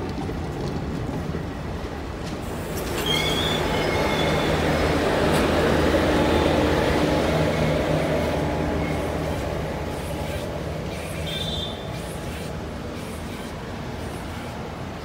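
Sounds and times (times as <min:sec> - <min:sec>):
train wheels rumbling on rail: 0:00.0 - 0:15.0
high wheel squeals: 0:02.7 - 0:04.7, 0:10.9 - 0:12.1.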